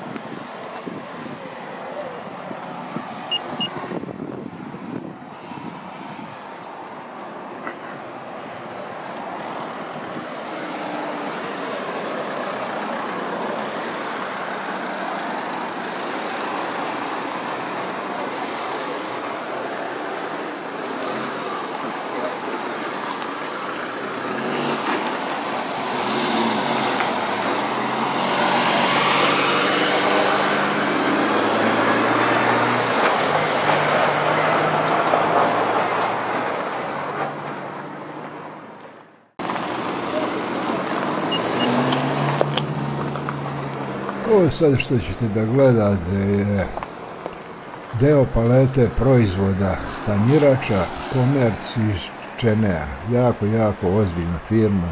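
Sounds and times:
road traffic noise: 0:00.0 - 0:54.9.

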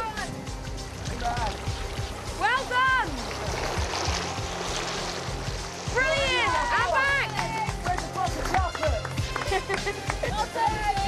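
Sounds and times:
background music: 0:00.0 - 0:11.0
swimmer splashing: 0:00.0 - 0:11.0
excited shouts and whoops: 0:06.0 - 0:07.8
person laughing: 0:09.4 - 0:10.5.

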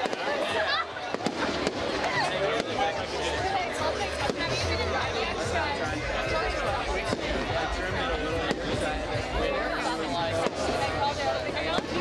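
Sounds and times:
fireworks bangs and crackles: 0:00.0 - 0:04.9, 0:06.4 - 0:09.5, 0:10.3 - 0:12.0
people talking and calling out: 0:00.0 - 0:12.0.

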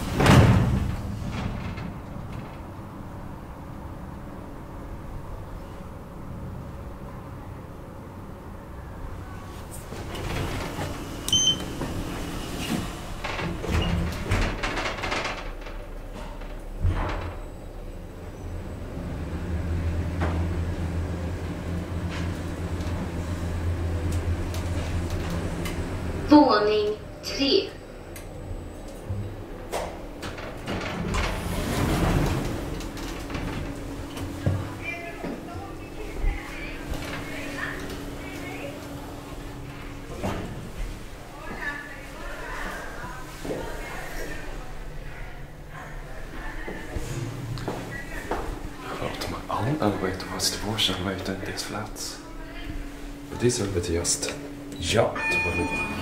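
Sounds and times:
elevator doors sliding: 0:00.0 - 0:56.0
elevator hum: 0:00.0 - 0:56.0
floor announcement: 0:24.7 - 0:27.9, 0:34.4 - 0:40.2, 0:40.8 - 0:56.0.

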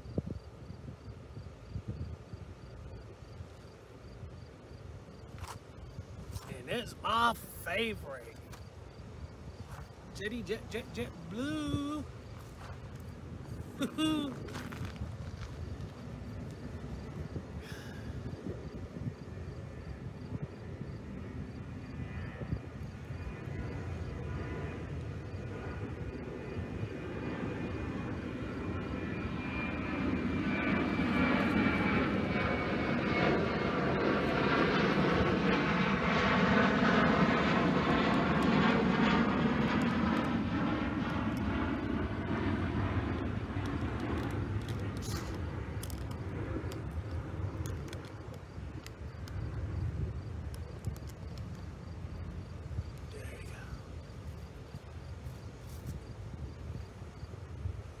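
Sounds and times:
high jet engine whine: 0:00.0 - 0:58.0
jet airliner flying past: 0:00.0 - 0:58.0.

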